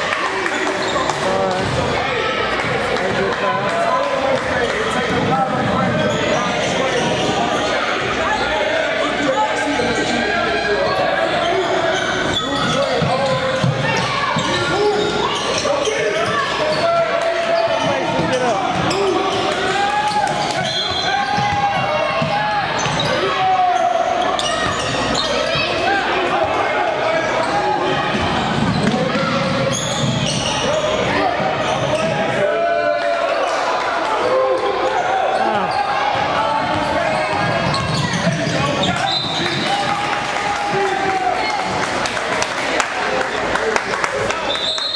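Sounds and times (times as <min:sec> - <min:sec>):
many overlapping voices: 0:00.0 - 0:44.9
basketball bouncing on court: 0:01.1 - 0:01.9, 0:20.5 - 0:23.1, 0:28.1 - 0:30.5, 0:36.6 - 0:38.6.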